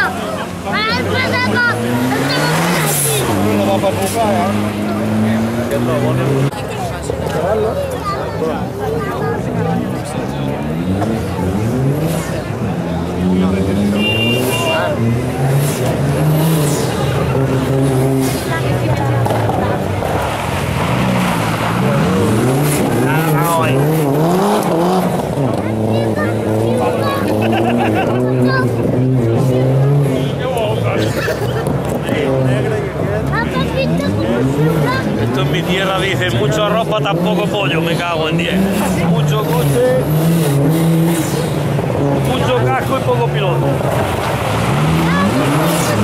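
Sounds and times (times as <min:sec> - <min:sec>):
car engine revving hard: 0:00.0 - 0:08.2, 0:09.2 - 0:46.0.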